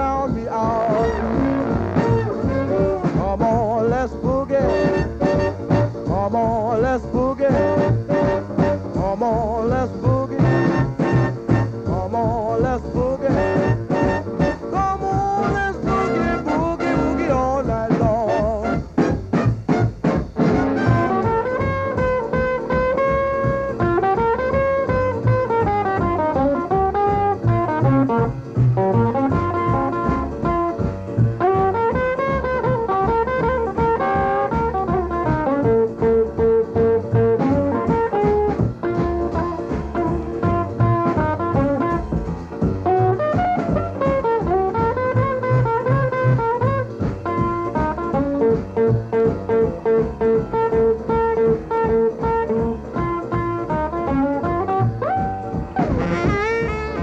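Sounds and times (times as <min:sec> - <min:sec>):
band rhythm section beat: 0:00.0 - 0:57.0
lead guitar: 0:00.0 - 0:57.0.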